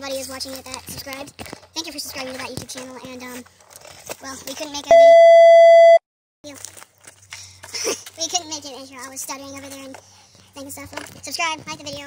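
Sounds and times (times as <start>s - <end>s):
boy's voice: 0.0s - 3.5s, 4.1s - 5.0s, 7.8s - 12.0s
test-tone beep: 4.9s - 6.0s.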